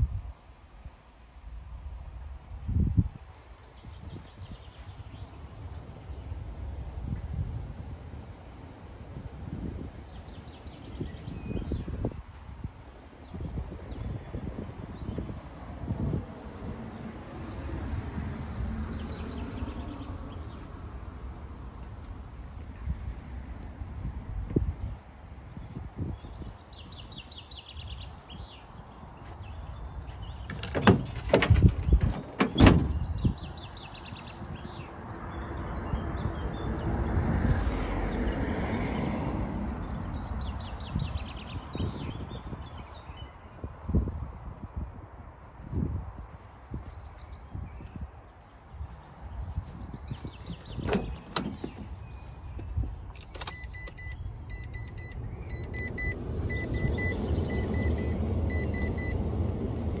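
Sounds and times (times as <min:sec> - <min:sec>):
tailgate metal clunks: 0:30.5 - 0:33.1, 0:50.5 - 0:52.0
dashboard warning chime beeps: 0:53.4 - 0:59.2.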